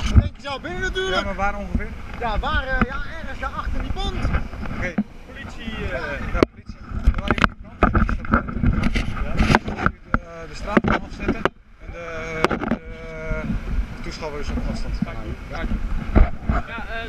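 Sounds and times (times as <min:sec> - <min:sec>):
wind rumble on microphone: 0:00.0 - 0:17.0
sharp knocks on camera: 0:03.7 - 0:05.1, 0:06.4 - 0:11.6, 0:12.4 - 0:12.8, 0:14.4 - 0:16.7.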